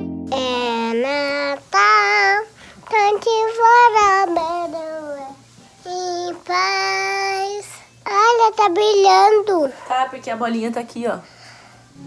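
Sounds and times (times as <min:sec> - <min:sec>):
girl singing: 0:00.2 - 0:09.8.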